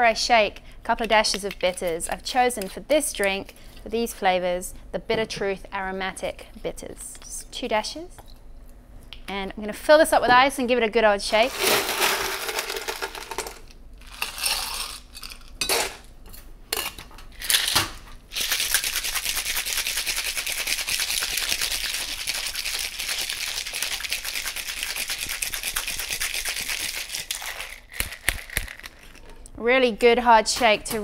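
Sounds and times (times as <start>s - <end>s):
ice clattering into metal shaker: 11.5s - 15.4s
ice rattling in shaken shaker: 11.5s - 15.4s, 18.3s - 29.2s.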